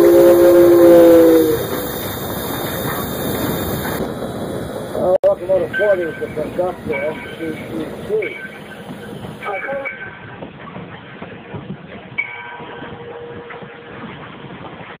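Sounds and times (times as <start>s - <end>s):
steam locomotive running: 0.0s - 15.0s.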